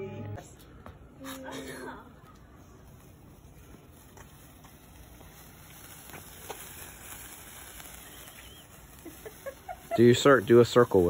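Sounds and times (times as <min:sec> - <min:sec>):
quiet night outdoor ambience: 0:00.0 - 0:11.0
sparkler fizzing crackle: 0:01.2 - 0:11.0.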